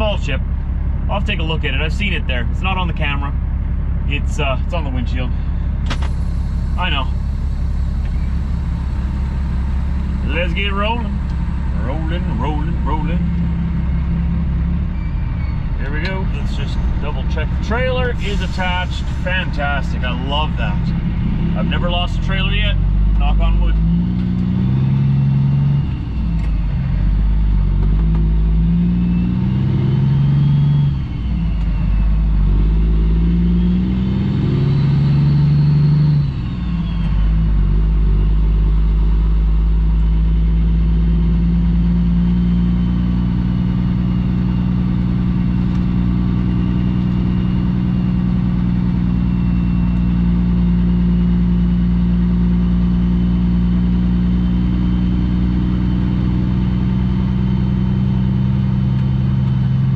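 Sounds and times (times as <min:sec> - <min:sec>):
diesel truck engine under load: 0:00.0 - 0:59.9.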